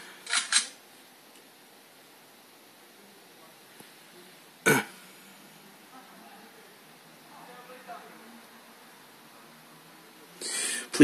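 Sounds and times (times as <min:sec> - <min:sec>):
man's throat sound: 0:04.7 - 0:05.0.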